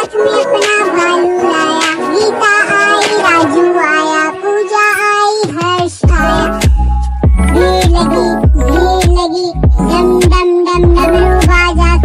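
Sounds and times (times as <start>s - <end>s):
backing music: 0.0s - 12.0s
child-like singing voice: 0.0s - 12.0s
heavy bass drum beat: 6.0s - 11.7s.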